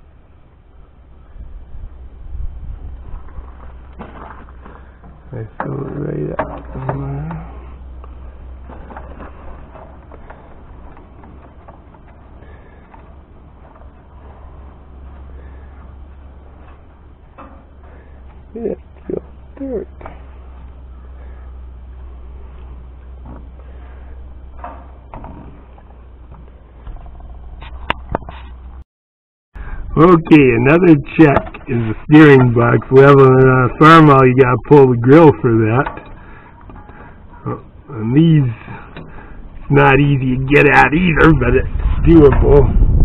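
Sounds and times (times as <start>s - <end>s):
low rumble: 37.2s - 43.0s.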